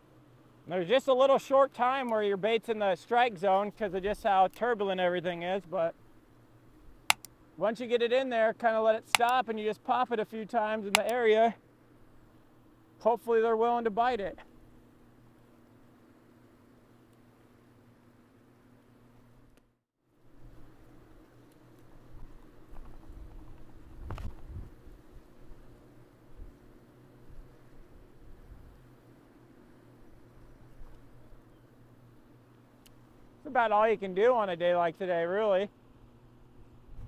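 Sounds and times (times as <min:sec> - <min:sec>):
wind gusting on microphone: 0:23.1 - 0:25.0.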